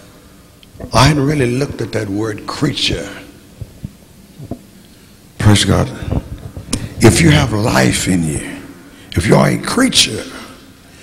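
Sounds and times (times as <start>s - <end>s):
faint steady hum: 0.0s - 11.0s
microphone handling thumps: 3.6s - 4.7s, 6.0s - 7.0s.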